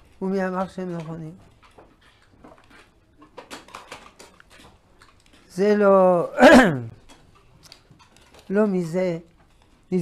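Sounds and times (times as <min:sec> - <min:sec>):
lip and tongue clicks: 0:07.0 - 0:08.5.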